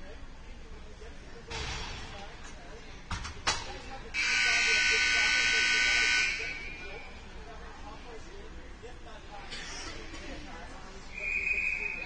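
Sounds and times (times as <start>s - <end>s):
scoreboard buzzer: 4.2s - 6.8s.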